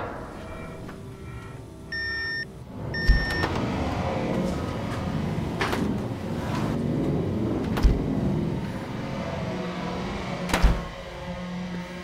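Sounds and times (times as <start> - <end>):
steady rumbling noise: 0.0 - 12.0
long electronic beeps: 1.9 - 3.5.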